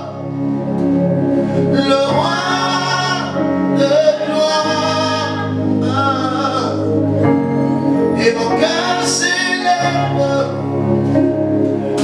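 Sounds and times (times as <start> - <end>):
keyboard chords: 0.0 - 12.0
man singing: 1.7 - 7.1, 8.1 - 10.8.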